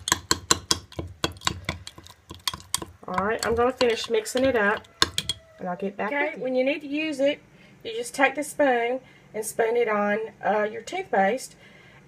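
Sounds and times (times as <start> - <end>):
metal spoon clinking in glass jar: 0.0 - 5.5.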